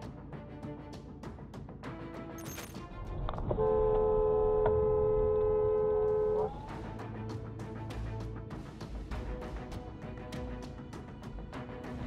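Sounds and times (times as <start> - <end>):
two-tone car horn blast: 3.6 - 6.5.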